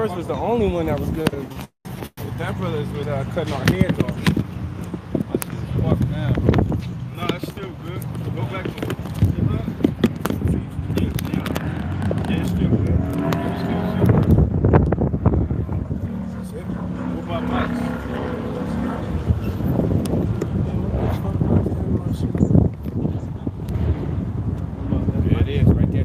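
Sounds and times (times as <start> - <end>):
men talking indistinctly: 0.0 - 26.0
wind rumble on microphone: 3.1 - 26.0.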